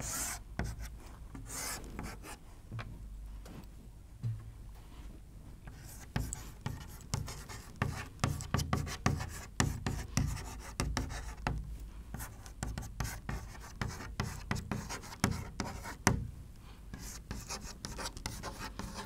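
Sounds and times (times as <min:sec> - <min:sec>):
chalk writing on chalkboard: 0:00.0 - 0:02.4, 0:05.7 - 0:16.2, 0:16.9 - 0:19.0.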